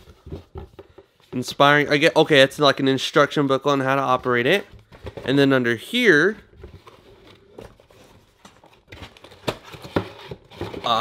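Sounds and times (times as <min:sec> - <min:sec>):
cardboard rustling and scraping: 0:06.2 - 0:11.0.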